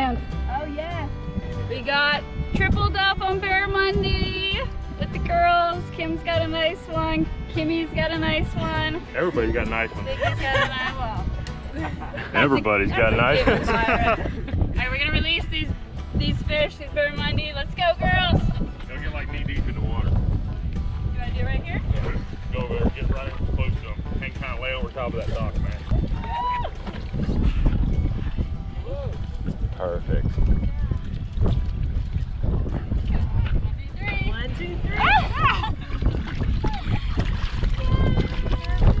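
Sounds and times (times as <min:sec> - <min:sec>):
wind rumbling on microphone: 0:00.0 - 0:39.0
water sloshing around hands: 0:24.9 - 0:28.4, 0:30.6 - 0:39.0.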